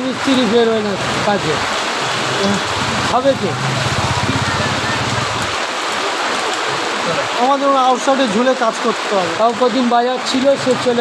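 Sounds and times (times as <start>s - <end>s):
hiss of falling water: 0.1s - 9.4s.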